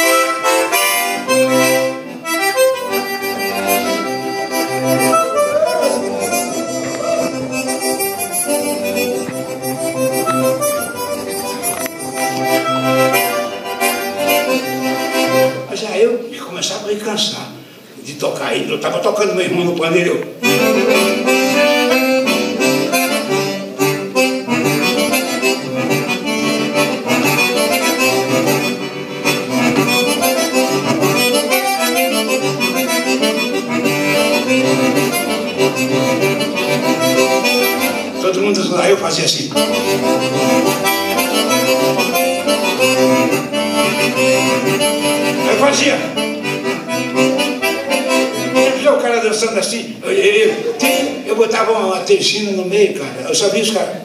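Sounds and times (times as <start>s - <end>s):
button accordion dance tune: 0.0s - 15.8s, 20.3s - 53.8s.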